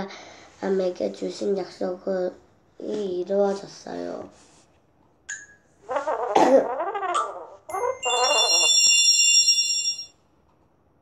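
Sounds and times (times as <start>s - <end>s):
electronic chime: 7.7s - 10.1s.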